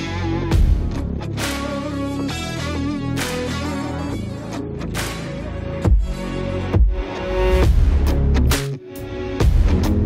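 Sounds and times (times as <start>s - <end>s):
guitar music over steady beat: 0.0s - 10.0s.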